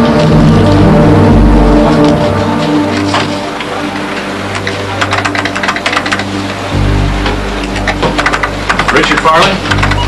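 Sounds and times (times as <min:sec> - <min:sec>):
background music drone: 0:00.0 - 0:10.0
computer keyboard typing: 0:04.6 - 0:06.4, 0:07.6 - 0:10.0.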